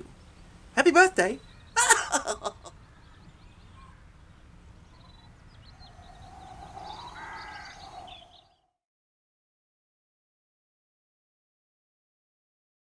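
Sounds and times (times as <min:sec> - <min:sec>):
low background noise: 0:00.0 - 0:08.4
bird chirps: 0:02.6 - 0:08.7.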